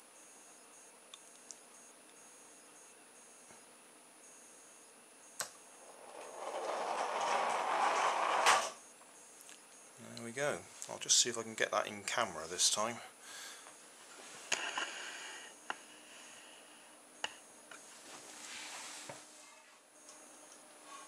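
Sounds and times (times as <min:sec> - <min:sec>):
toy car rolling on wooden floor: 0:05.8 - 0:08.8.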